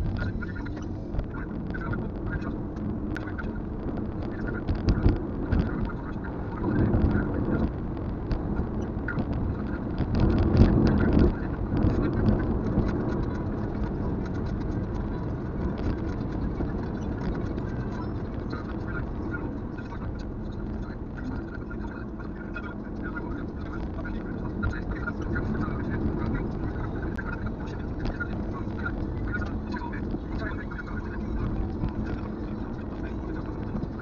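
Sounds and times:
car road and engine noise: 0.0s - 34.0s.

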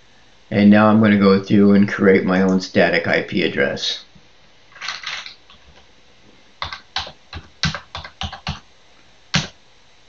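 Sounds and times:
computer keyboard typing: 4.8s - 5.8s, 6.6s - 8.6s, 9.3s - 9.6s.

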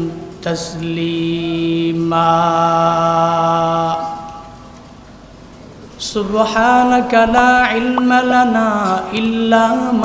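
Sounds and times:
man chanting through loudspeaker: 0.0s - 4.6s, 6.0s - 10.0s
low hiss of amplified hall: 0.0s - 10.0s.

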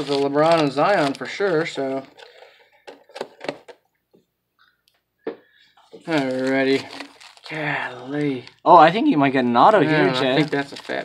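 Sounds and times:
foil packs crinkling: 0.0s - 2.5s, 6.0s - 8.7s, 10.0s - 11.0s.

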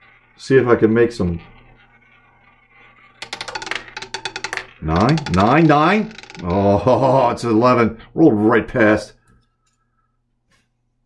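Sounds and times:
roulette ball clattering: 1.4s - 7.5s.

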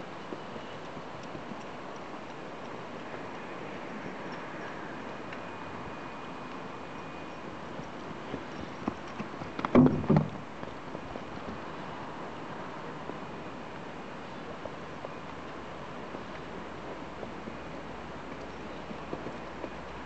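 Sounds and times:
horse hoofbeats on dirt: 0.0s - 20.0s.

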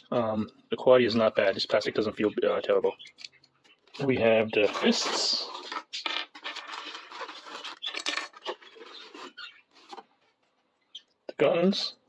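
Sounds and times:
toy parts scraping styrofoam: 3.9s - 10.4s.

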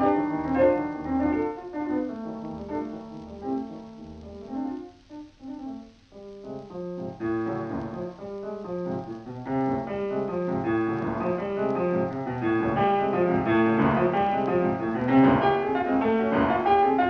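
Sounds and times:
piano music: 0.0s - 17.0s.

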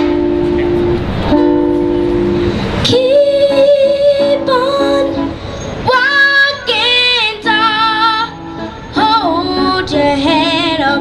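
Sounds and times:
instrumental backing: 0.0s - 11.0s
girl singing: 2.8s - 11.0s.

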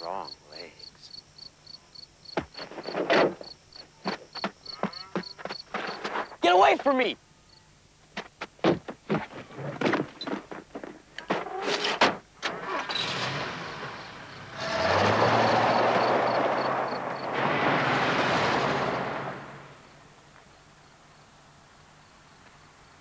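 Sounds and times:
knocks and scuffs: 2.3s - 7.0s, 8.0s - 12.3s
tyres crunching gravel: 2.4s - 7.0s, 8.1s - 20.2s.

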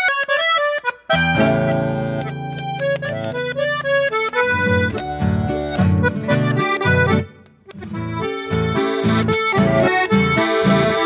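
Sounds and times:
button accordion playing: 0.0s - 11.0s
classical guitar accompanying: 1.1s - 11.0s.

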